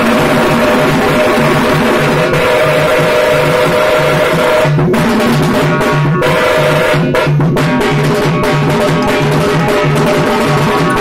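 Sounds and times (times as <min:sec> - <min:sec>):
frame drums beaten with sticks: 0:00.0 - 0:11.0.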